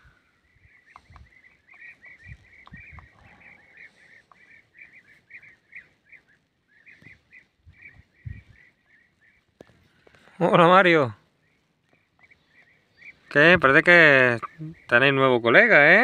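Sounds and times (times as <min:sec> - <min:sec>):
bird chirping rapidly: 0:00.4 - 0:09.5, 0:11.4 - 0:16.0.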